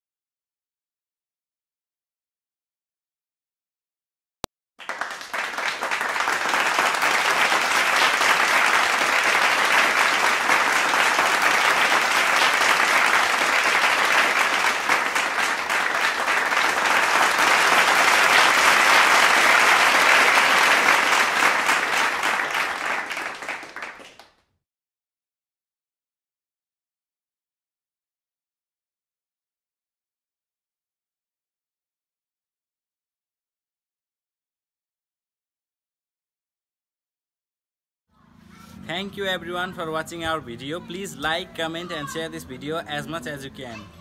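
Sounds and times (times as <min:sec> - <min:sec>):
crowd clapping: 0:04.8 - 0:24.4, 0:39.0 - 0:43.8.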